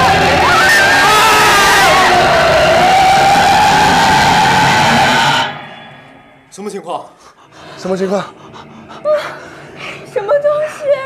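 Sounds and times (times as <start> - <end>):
loud harsh din: 0.0 - 6.5
long wavering shriek: 0.1 - 6.5.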